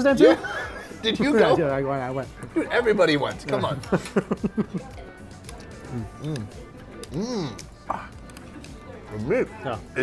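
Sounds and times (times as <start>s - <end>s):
background music: 0.0s - 10.0s
man laughing: 3.9s - 4.9s.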